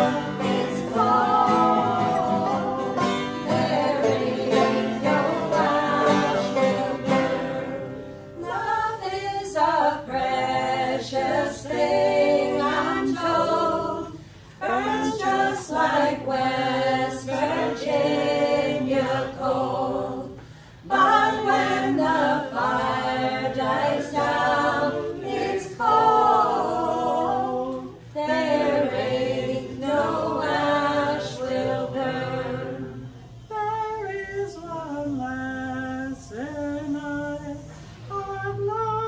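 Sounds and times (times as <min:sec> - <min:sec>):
banjo: 0:00.0 - 0:07.8
acoustic guitar: 0:00.0 - 0:34.0
group singing in harmony: 0:00.0 - 0:39.0.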